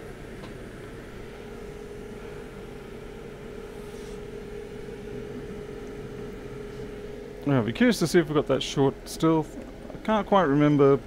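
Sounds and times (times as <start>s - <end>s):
fan motor humming: 0.0s - 11.0s.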